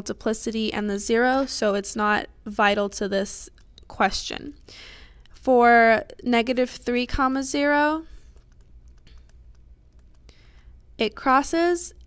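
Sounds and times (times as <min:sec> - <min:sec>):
steady low hum: 0:00.0 - 0:12.0
stylus clicking and scratching: 0:03.0 - 0:05.4, 0:08.0 - 0:12.0.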